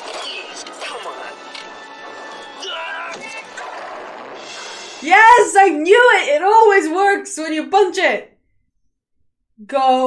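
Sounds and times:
tense orchestral music: 0:00.2 - 0:05.4.

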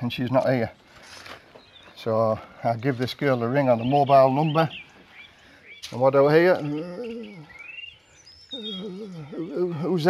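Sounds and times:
bird chirping: 0:00.2 - 0:10.0
man's voice: 0:02.0 - 0:04.8, 0:05.8 - 0:07.5, 0:08.6 - 0:10.0.

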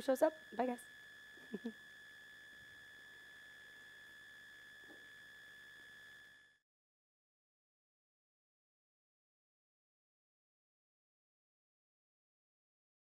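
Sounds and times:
high-pitched electronic whine: 0:00.0 - 0:06.6
person speaking and laughing: 0:01.5 - 0:01.7.

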